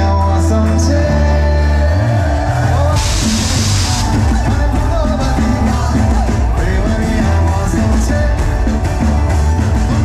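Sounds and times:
crowd singing and shouting: 0.0 - 10.0
live band music: 0.0 - 10.0
cymbal wash hiss: 3.0 - 4.2.

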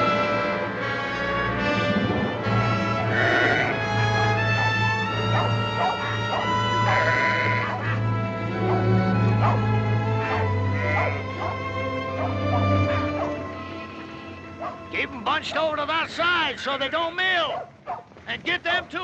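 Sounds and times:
orchestral film score: 0.0 - 17.2
sheep bleating: 3.0 - 3.8, 5.9 - 8.0, 9.5 - 11.6.

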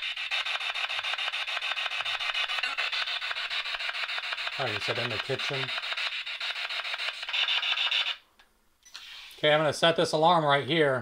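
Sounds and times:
radio static sweeping stations: 4.6 - 5.7.

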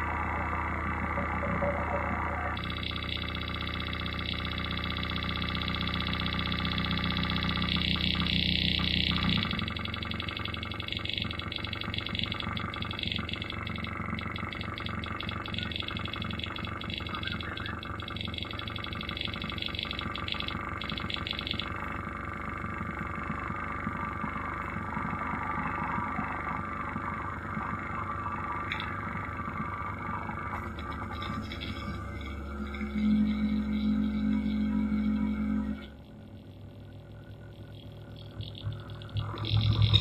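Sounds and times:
electronic drone with stuttering tones: 0.0 - 40.0
noisy mid-range electronic texture: 0.0 - 40.0
loud low drone: 23.4 - 36.1, 38.3 - 40.0.

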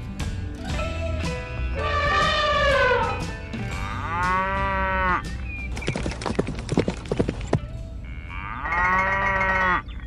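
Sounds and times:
cow mooing: 1.8 - 5.2, 8.0 - 9.8.

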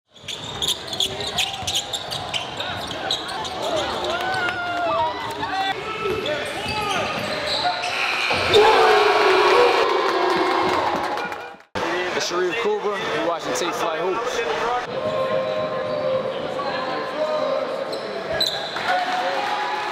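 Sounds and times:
players' voices and shouts: 2.6 - 11.0.

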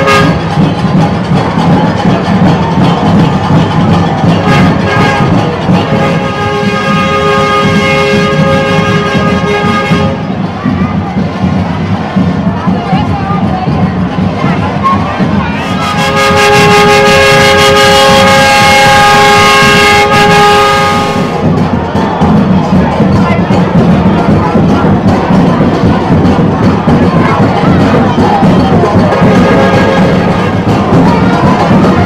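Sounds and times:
loud held horn chord: 0.0 - 0.6, 4.4 - 10.3, 15.6 - 21.5, 28.9 - 31.7
conga street band drumming: 0.0 - 32.0
crowd voices: 0.0 - 32.0.

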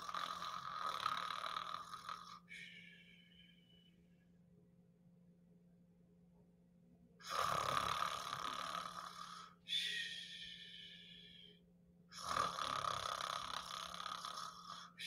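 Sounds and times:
heavy hissing breaths: 9.1 - 11.5.

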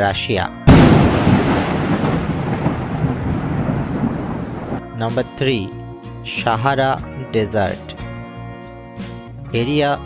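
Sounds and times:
thunder-like boom: 0.7 - 4.8.

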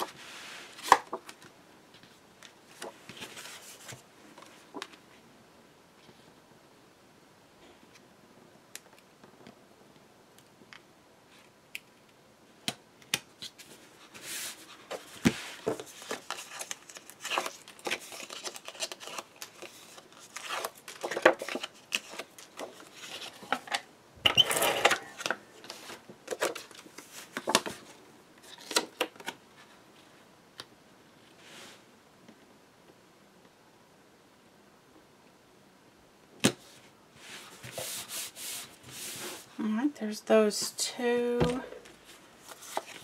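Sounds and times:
paper rustling and sliding: 0.0 - 5.1, 13.4 - 23.8, 24.4 - 29.8, 36.6 - 39.6, 41.8 - 43.0.

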